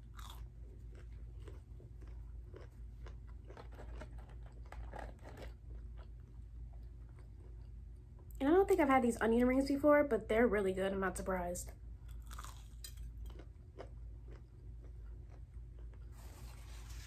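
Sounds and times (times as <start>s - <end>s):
chewing crunchy onion rings: 0.0s - 8.4s, 12.0s - 16.8s
steady low hum: 0.0s - 17.0s.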